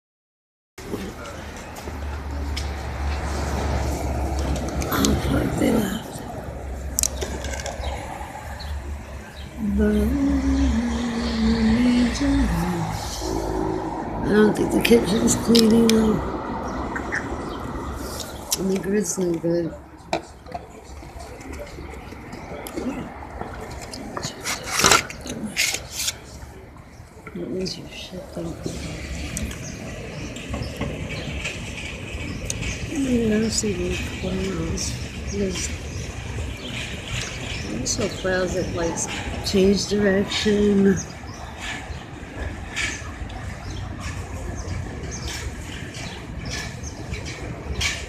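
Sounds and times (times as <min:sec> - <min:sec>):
low rumble of city traffic: 0:00.8 - 0:48.0.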